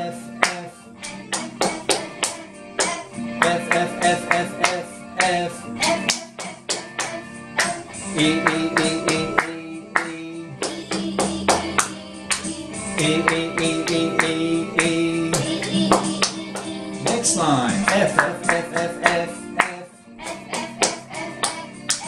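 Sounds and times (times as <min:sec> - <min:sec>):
music backing track: 0:00.0 - 0:22.0
voices singing: 0:00.0 - 0:22.0
hand claps: 0:00.4 - 0:22.0.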